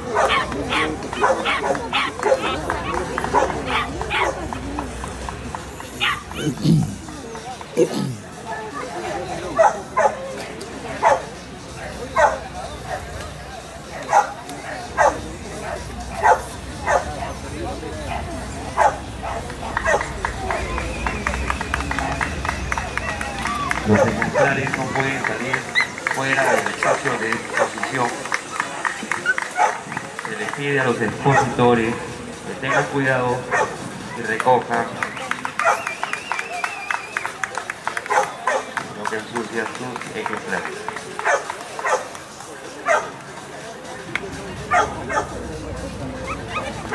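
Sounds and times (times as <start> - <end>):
man making an announcement: 0.0 - 8.4, 23.7 - 35.8, 38.5 - 41.4
chatter of onlookers: 0.0 - 46.9.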